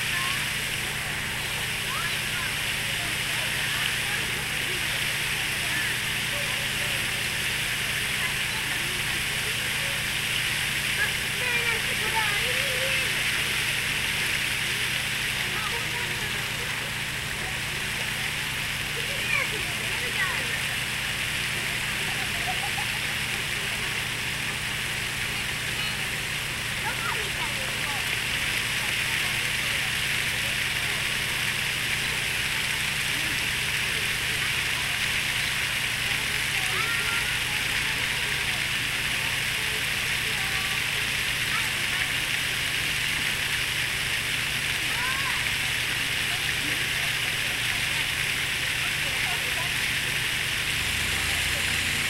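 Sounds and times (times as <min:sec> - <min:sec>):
faint voices talking: 0:00.0 - 0:52.0
fountain spray splashing: 0:00.0 - 0:52.0.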